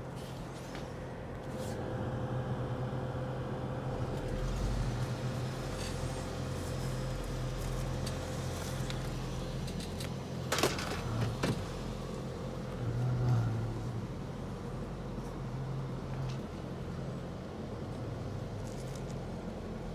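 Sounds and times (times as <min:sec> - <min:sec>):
vehicle engine humming: 0:00.0 - 0:19.9.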